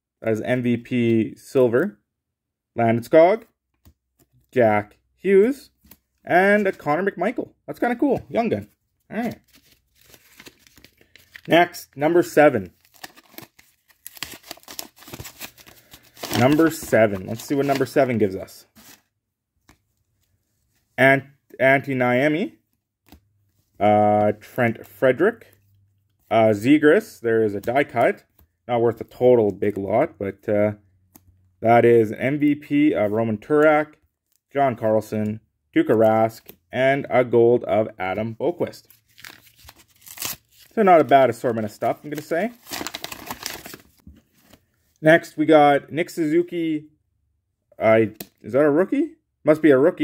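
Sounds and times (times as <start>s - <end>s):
paper wrapper tearing and crinkling: 9.4s - 11.5s, 12.7s - 18.1s, 39.0s - 40.8s, 42.0s - 44.0s.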